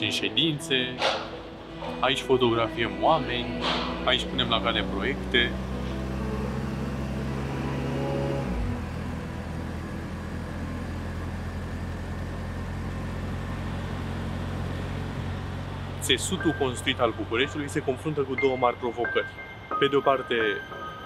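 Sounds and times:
low sustained music tones: 0:00.0 - 0:11.2, 0:15.6 - 0:21.0
city street traffic: 0:00.0 - 0:21.0.

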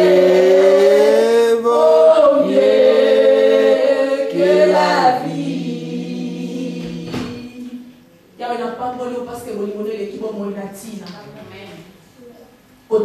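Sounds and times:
choir singing a hymn: 0:00.0 - 0:08.1
knock: 0:06.8 - 0:07.4.

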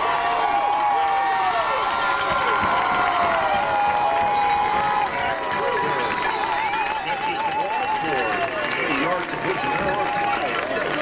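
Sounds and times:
spectators yelling and cheering: 0:00.0 - 0:11.0.

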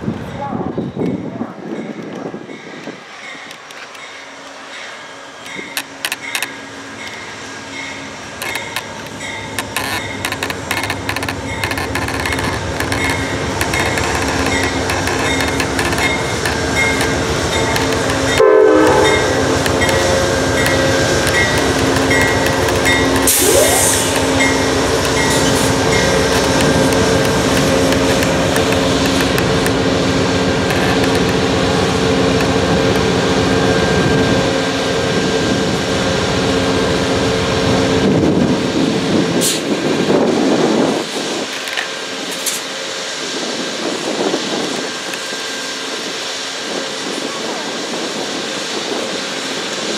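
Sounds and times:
diesel locomotive engine running: 0:00.0 - 0:49.9
train coaches rumbling on rails: 0:00.0 - 0:49.9
locomotive bell ringing: 0:00.2 - 0:29.0.

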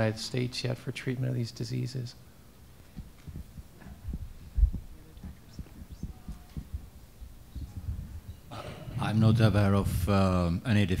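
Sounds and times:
microphone handling bumps: 0:02.8 - 0:10.4.

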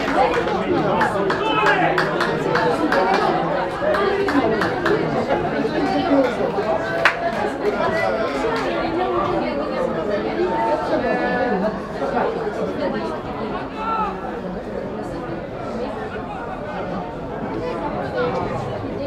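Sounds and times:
indistinct chatter of voices: 0:00.0 - 0:19.0.

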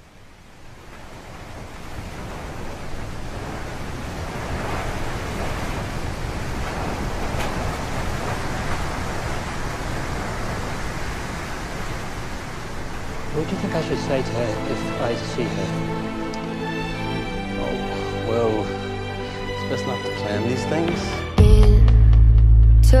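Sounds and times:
wind: 0:00.0 - 0:21.2
sea surf: 0:00.0 - 0:21.7.

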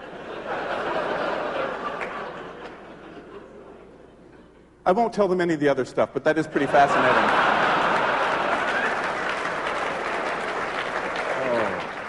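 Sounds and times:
audience applauding: 0:07.0 - 0:12.0.

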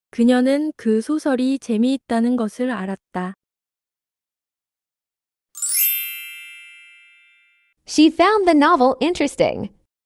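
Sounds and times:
bright chime sound effect: 0:05.6 - 0:07.8.

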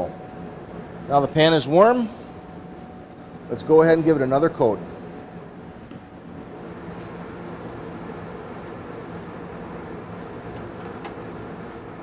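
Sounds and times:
ventilation fan hum: 0:00.0 - 0:12.0.

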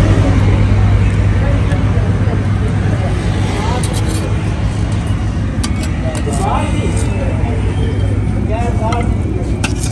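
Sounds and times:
faint voices: 0:00.0 - 0:09.9
steady low rumble: 0:00.0 - 0:09.9.

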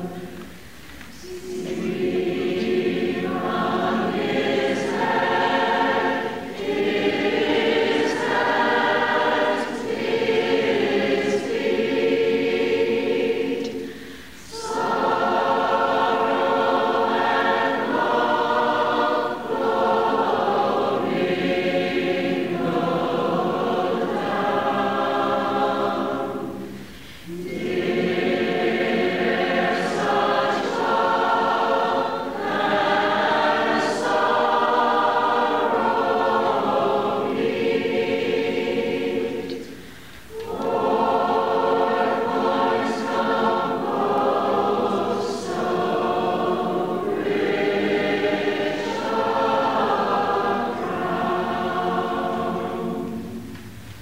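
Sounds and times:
choir singing slow sacred piece: 0:00.0 - 0:54.0.

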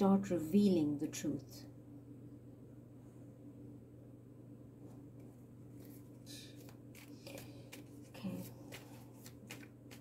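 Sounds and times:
cards being shuffled: 0:05.6 - 0:10.0.

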